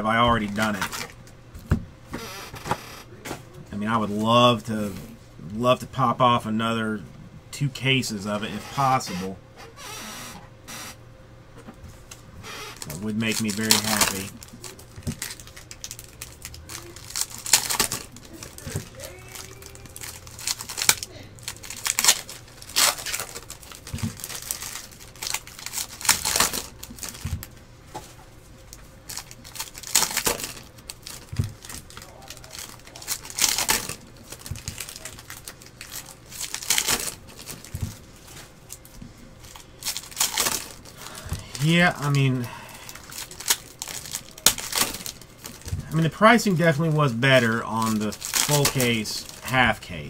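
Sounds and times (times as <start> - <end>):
foil wrappers crinkling and tearing: 0.1 - 1.2, 12.1 - 49.9
cards being handled: 12.0 - 49.8.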